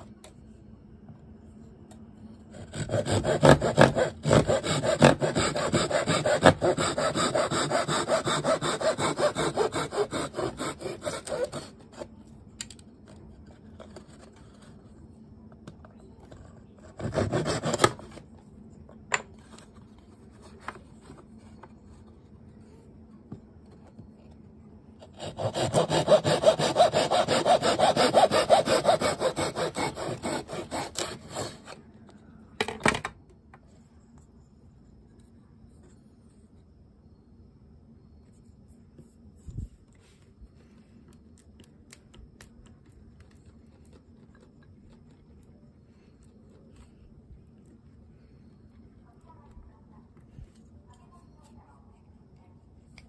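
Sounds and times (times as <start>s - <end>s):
handsaw cutting wood: 2.6s - 12.1s, 17.0s - 18.1s, 25.0s - 31.8s.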